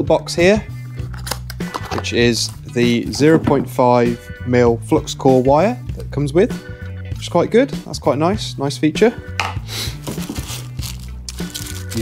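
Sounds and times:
background music: 0:00.0 - 0:12.0
plastic packaging crinkling: 0:10.0 - 0:12.0.

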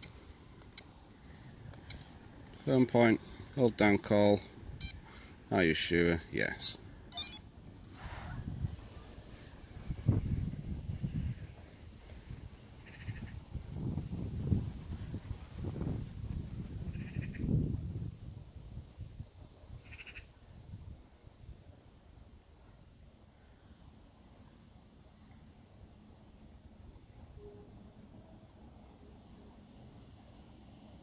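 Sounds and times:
uneven low rumbling: 0:07.6 - 0:12.6
short high animal calls: 0:12.8 - 0:13.4.

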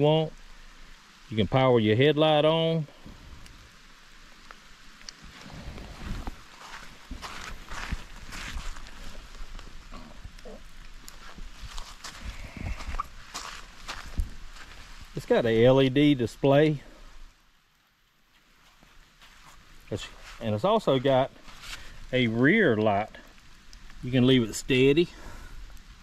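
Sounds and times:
footsteps on sandy ground: 0:05.2 - 0:09.8, 0:10.9 - 0:15.5, 0:18.3 - 0:21.9.

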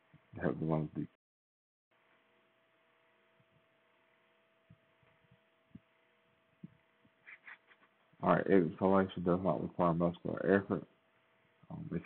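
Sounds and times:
faint electrical hum: 0:00.0 - 0:01.2, 0:01.9 - 0:12.0.

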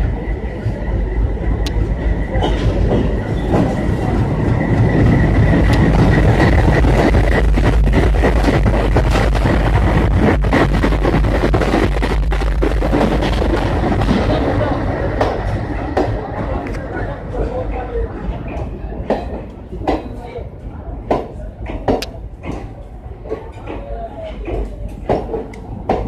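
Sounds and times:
diesel locomotive engines: 0:00.0 - 0:26.0
wheels rumbling on rail: 0:00.0 - 0:26.0.

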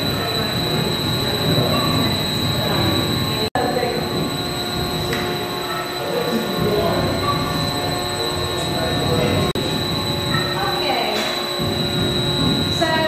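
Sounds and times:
steam engine running: 0:00.0 - 0:13.0.

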